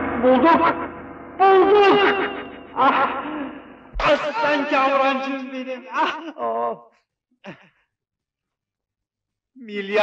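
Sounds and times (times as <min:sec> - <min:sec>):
person speaking: 0:01.5 - 0:06.9.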